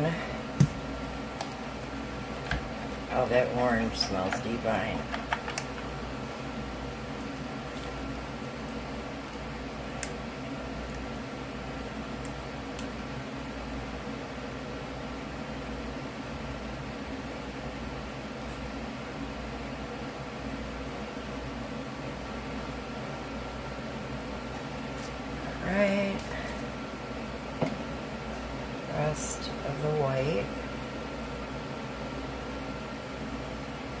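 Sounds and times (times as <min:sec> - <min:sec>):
low mechanical hum: 0:00.0 - 0:34.0.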